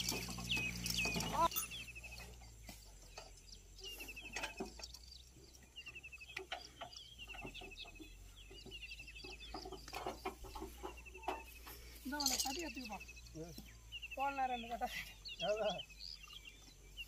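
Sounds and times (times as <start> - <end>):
bird calls: 0.0 - 17.0
sharp clicks and knocks: 5.8 - 11.8.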